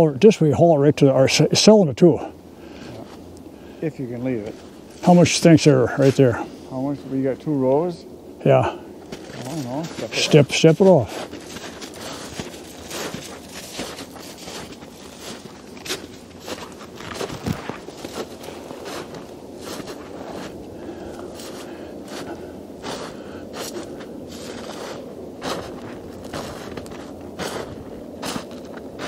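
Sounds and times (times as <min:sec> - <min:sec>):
footsteps crunching through snow: 0:09.0 - 0:29.0.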